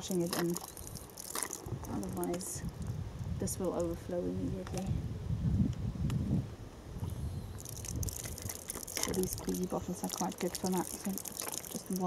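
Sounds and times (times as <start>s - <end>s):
water squirting from squeeze bottle: 0.0s - 2.9s, 7.5s - 12.0s
wind rumbling on microphone: 0.0s - 12.0s.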